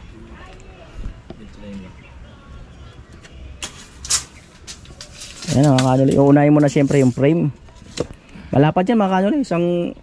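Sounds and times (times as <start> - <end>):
tape measure pulled along boards: 3.6 - 8.1.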